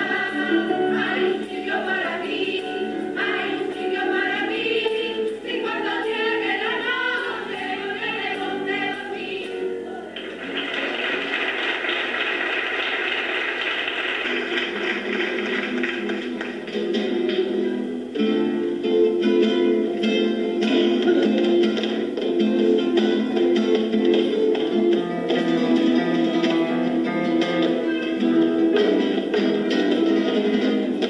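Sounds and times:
women singing together: 0.0 - 10.3
clapping: 10.2 - 16.7.

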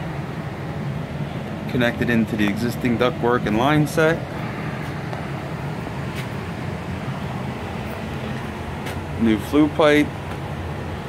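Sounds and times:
furnace humming: 0.0 - 11.0.

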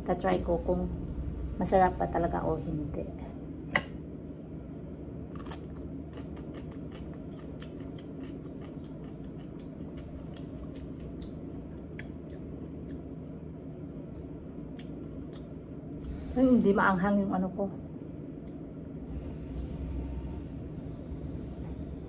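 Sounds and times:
low room hum: 0.0 - 22.0.

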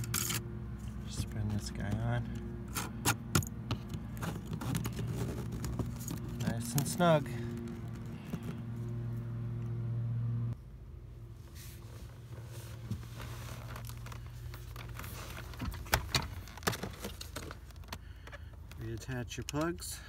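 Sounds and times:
low hum: 2.2 - 12.1.

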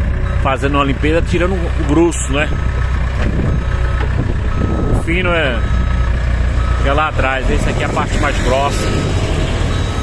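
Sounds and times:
diesel engine running: 0.0 - 10.0
reversing alarm beeping: 0.1 - 10.0.

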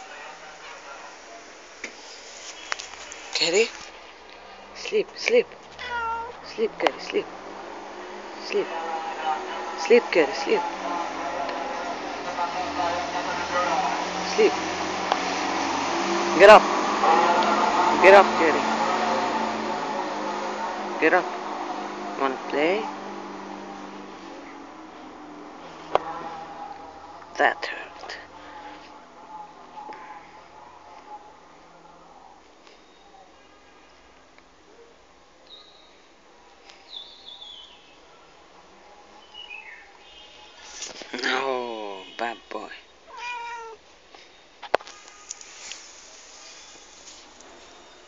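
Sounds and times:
background hiss: 0.0 - 22.2, 38.9 - 48.0
cat meowing: 5.7 - 6.5, 43.1 - 43.8.

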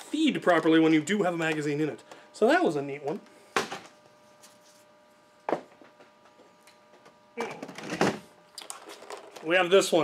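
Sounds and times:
plastic clattering and rattling: 7.6 - 9.5.

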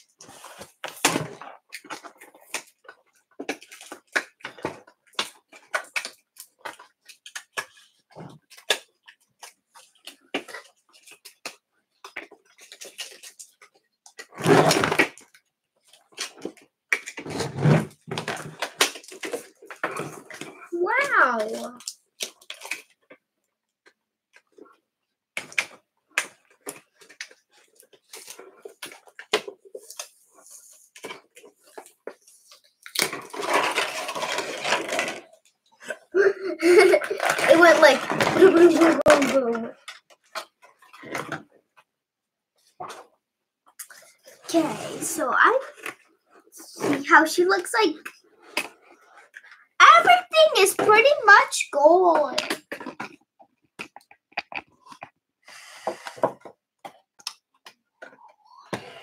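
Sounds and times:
packaging rustle: 31.0 - 35.4
toy packaging being opened: 31.0 - 36.0, 36.6 - 41.4.

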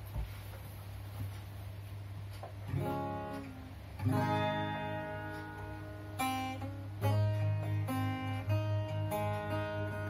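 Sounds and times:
faint taps: 0.0 - 3.5
low steady hum: 0.0 - 10.0
acoustic guitar chord ringing: 2.7 - 10.0.

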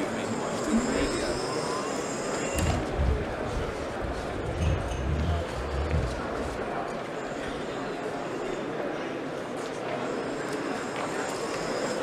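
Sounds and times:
crowd chatter in a large hall: 0.0 - 12.0
low thumps: 2.6 - 6.7.

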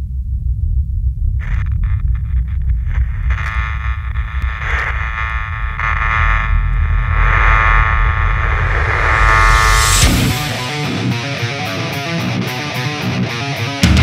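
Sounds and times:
low rumbling drone: 0.0 - 11.9
sustained high tones: 4.6 - 11.9.

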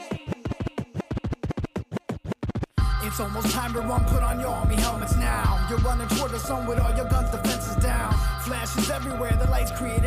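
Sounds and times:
hip hop beat with heavy bass: 0.0 - 10.0
turntable scratches: 0.0 - 10.0.

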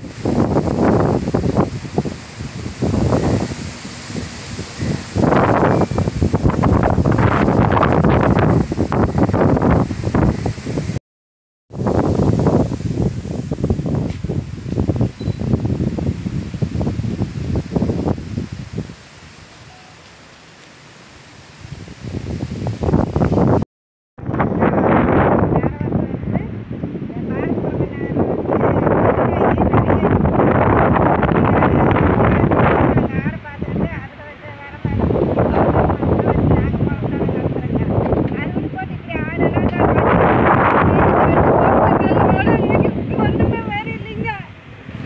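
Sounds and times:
wind buffeting microphone: 0.0 - 11.0, 11.7 - 19.6, 21.5 - 23.6, 24.2 - 45.0.

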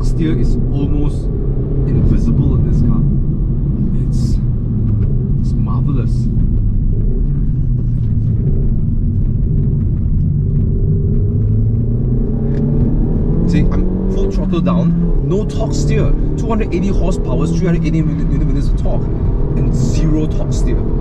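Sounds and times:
car engine accelerating: 0.0 - 21.0
road rumble: 0.0 - 21.0.

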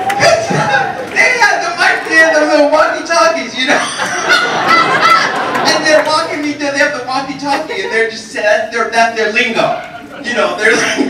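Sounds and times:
hearty laughter through speakers: 3.7 - 5.8.

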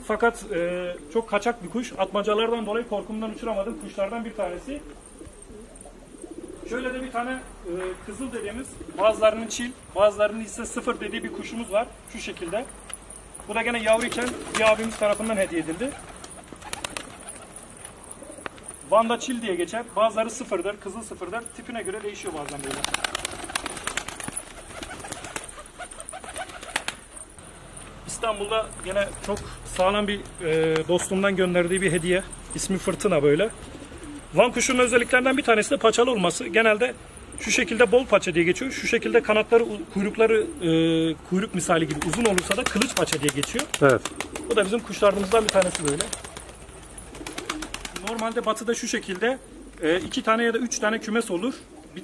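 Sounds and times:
pigeons cooing: 0.2 - 12.0, 13.1 - 27.9, 31.6 - 35.6, 36.2 - 38.0, 38.7 - 52.0.

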